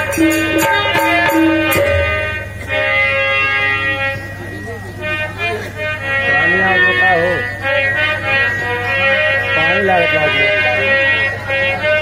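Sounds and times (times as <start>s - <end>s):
harmonium chord: 0.0s - 12.0s.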